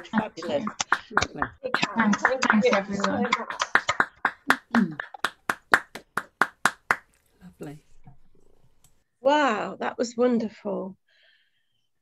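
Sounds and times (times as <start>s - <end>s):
hand clapping: 0.0s - 7.2s.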